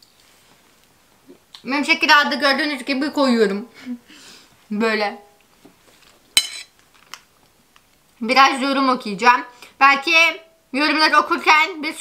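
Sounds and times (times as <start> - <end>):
fork clinking on plate: 6.4 - 6.7.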